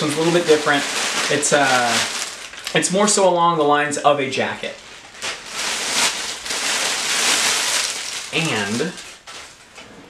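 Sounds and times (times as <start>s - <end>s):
jacket rustling: 0.0s - 3.3s, 4.6s - 10.0s.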